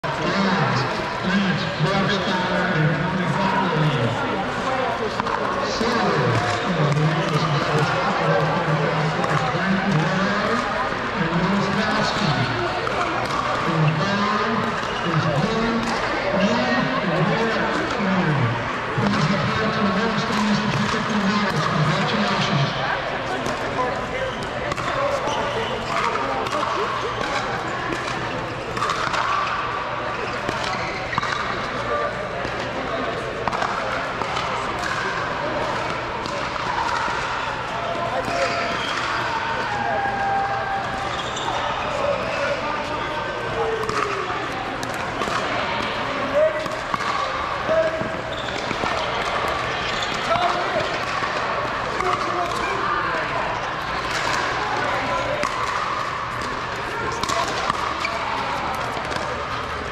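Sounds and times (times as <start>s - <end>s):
people chattering: 0.0s - 59.9s.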